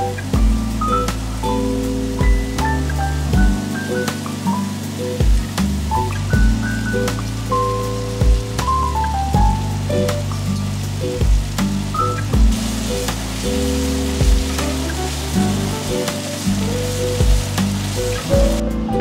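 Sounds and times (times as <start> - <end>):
food sizzling in a skillet: 0.0 - 18.6
background music with steady beat: 0.0 - 19.0.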